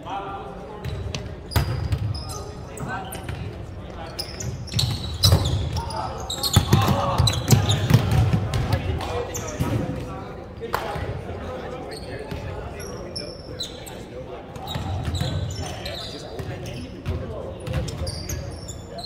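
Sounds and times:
players' voices echoing: 0.0s - 19.0s
sneakers squeaking: 0.8s - 10.0s, 11.7s - 19.0s
volleyball bounced and struck: 6.6s - 10.0s.

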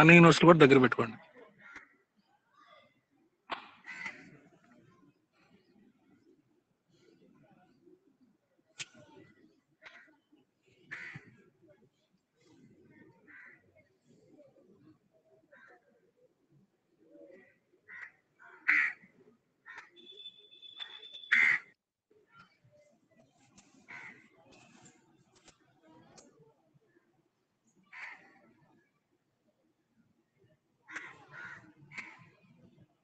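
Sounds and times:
crow cawing: 13.3s - 13.6s, 17.9s - 19.0s, 20.8s - 21.7s, 30.9s - 32.2s
bird harsh calls: 19.7s - 21.7s.

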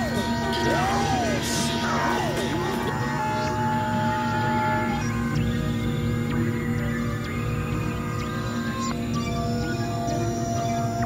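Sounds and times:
low hum: 0.0s - 11.0s
synthesizer drone: 0.0s - 11.0s.

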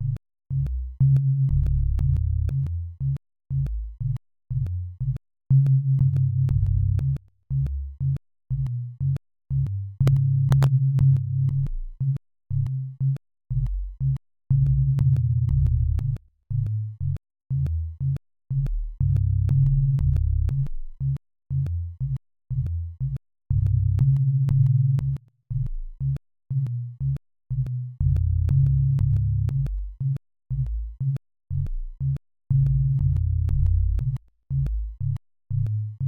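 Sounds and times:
synthesized bass line: 0.0s - 12.8s, 13.5s - 36.0s
distorted synthesized bass: 14.6s - 16.2s, 19.0s - 20.7s, 28.0s - 30.0s, 32.6s - 35.7s.

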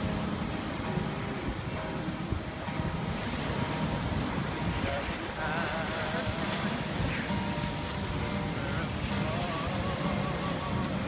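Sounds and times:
faint acoustic guitar: 0.0s - 11.0s
surf: 0.0s - 11.0s
wind buffeting microphone: 0.0s - 11.0s.

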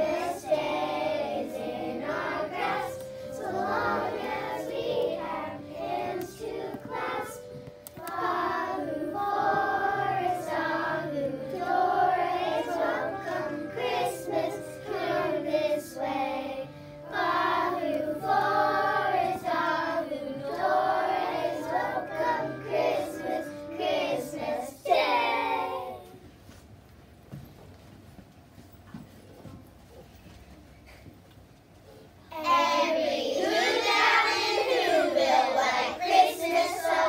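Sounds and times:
children's choir singing: 0.0s - 26.2s, 32.3s - 37.0s.

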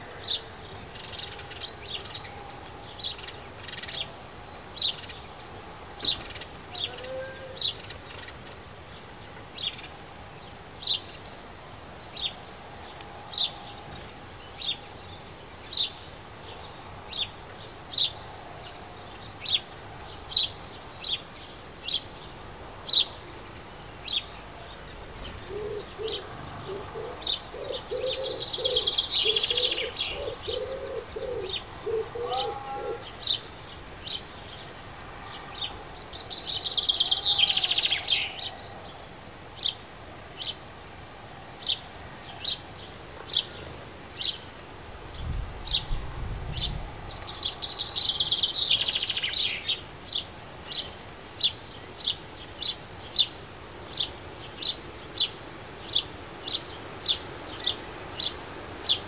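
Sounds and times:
bird twittering song: 0.0s - 34.8s, 45.1s - 59.0s
low repeated bird calls: 0.0s - 40.6s
songbirds chirping: 0.0s - 59.0s.

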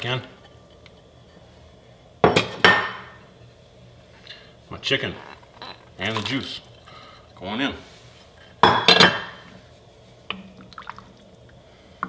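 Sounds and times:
liquid splashing into a pot: 10.3s - 11.4s.

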